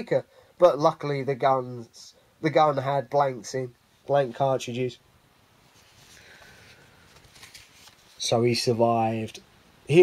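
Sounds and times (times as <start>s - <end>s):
paper album page rustling: 5.7s - 8.4s.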